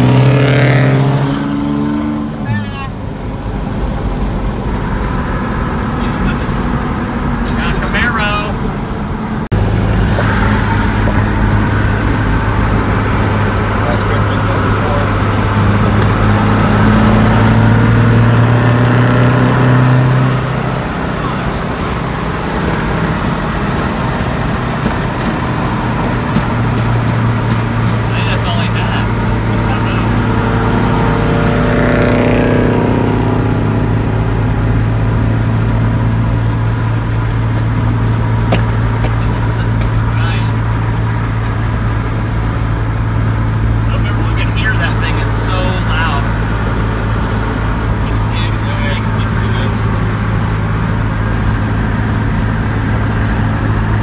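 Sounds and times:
car passing: 0:00.0 - 0:54.0
diesel truck engine: 0:00.0 - 0:54.0
wind and road noise: 0:00.0 - 0:54.0.

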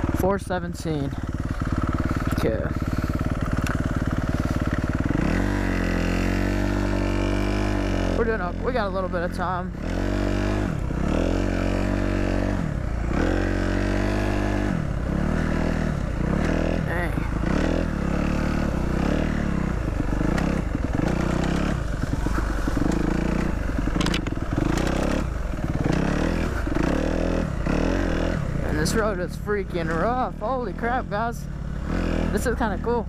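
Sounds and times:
dirt bike engine revving: 0:00.0 - 0:33.0.

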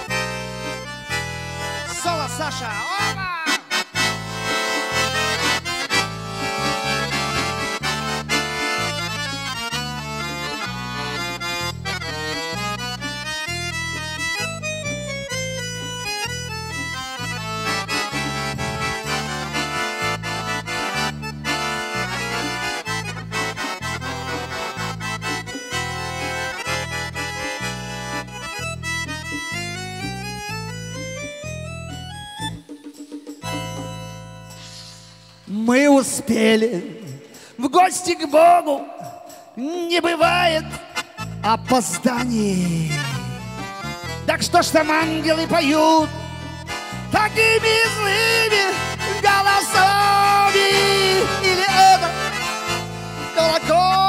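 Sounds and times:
button accordion solo: 0:00.0 - 0:54.0.

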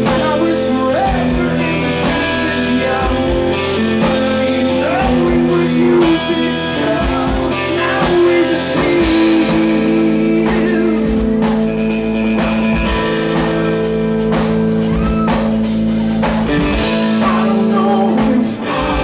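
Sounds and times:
man singing: 0:00.0 - 0:12.4, 0:16.7 - 0:19.0
electric guitar: 0:00.0 - 0:19.0
keyboard chords: 0:00.0 - 0:19.0
steady beat: 0:00.0 - 0:19.0.

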